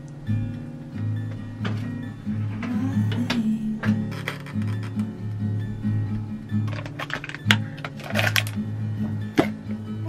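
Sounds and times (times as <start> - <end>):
background music with bass: 0.0 - 10.0
metal spoon scraping plastic tub: 4.0 - 5.0, 6.6 - 8.6.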